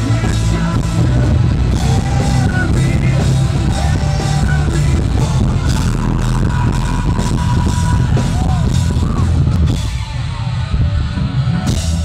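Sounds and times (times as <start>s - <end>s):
live rock band through pa: 0.0s - 12.0s.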